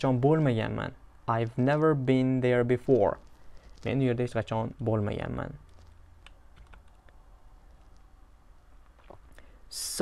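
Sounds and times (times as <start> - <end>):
keyboard keys clicking: 5.7 - 7.2.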